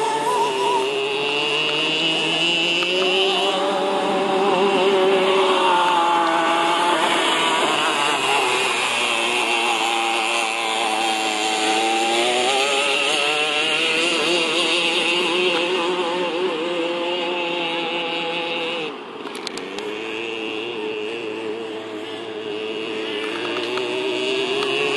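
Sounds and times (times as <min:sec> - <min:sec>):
go-kart engine running: 0:00.0 - 0:24.9.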